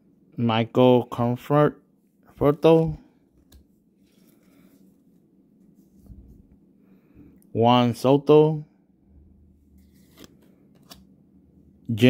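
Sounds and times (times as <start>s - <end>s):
trading cards rustling: 9.7s - 11.1s
soft card clicks: 10.0s - 11.1s.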